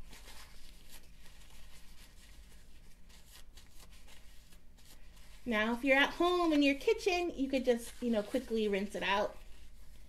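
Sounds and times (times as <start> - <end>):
paper towel rubbing a spoon: 0.0 - 10.0.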